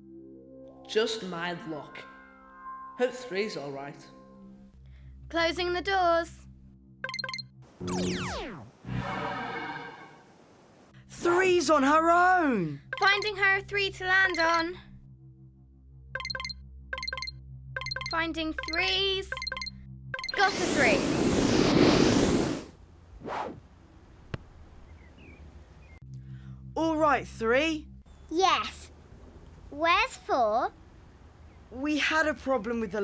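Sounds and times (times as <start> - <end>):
short synth beeps: 7.0 - 8.4, 12.9 - 13.3, 16.2 - 20.5
cartoon whoosh: 7.8 - 8.7, 20.4 - 23.6
falling electronic sweep: 7.8 - 9.4, 20.4 - 23.6.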